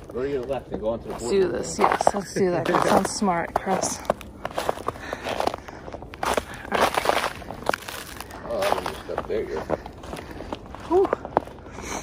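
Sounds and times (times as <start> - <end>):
boot footsteps in snow: 1.0 - 5.6.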